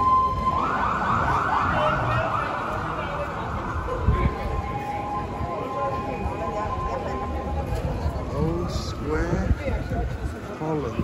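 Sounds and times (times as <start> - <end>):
siren yelping: 0.0 - 7.6
low street noise: 0.0 - 11.0.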